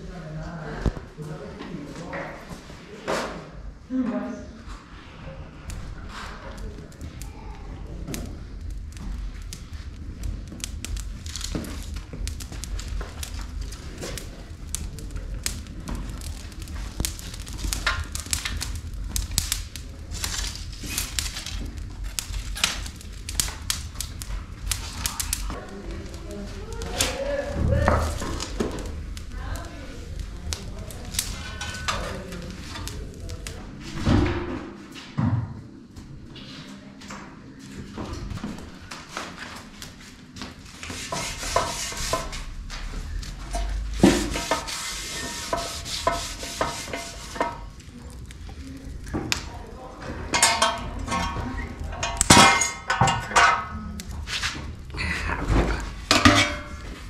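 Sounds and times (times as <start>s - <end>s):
brushwood fire crackling: 4.5s - 34.6s, 35.9s - 57.0s
low rumble: 4.5s - 34.8s, 41.6s - 45.2s.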